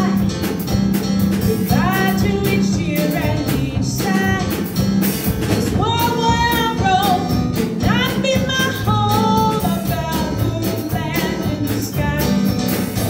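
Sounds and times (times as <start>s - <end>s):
woman singing gospel song: 0.0s - 0.3s, 1.5s - 4.7s, 5.8s - 12.5s.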